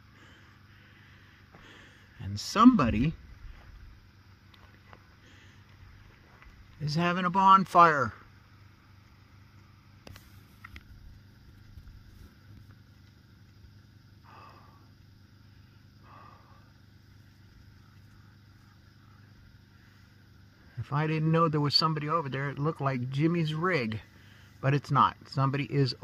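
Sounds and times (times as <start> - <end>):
faint steady low rumble: 0.0 - 26.0.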